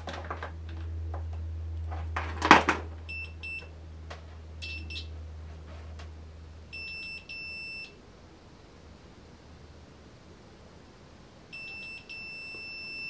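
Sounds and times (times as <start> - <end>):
test leads rustling and clattering: 0.0 - 4.5, 5.4 - 6.2
steady low hum: 0.0 - 13.0
multimeter short high beeps: 3.1 - 3.7, 4.6 - 5.1, 6.7 - 8.0, 11.5 - 13.0.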